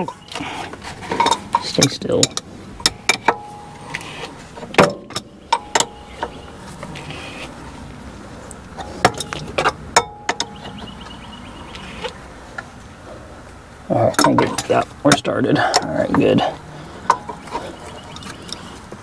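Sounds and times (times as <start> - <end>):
low background noise: 0.0 - 19.0.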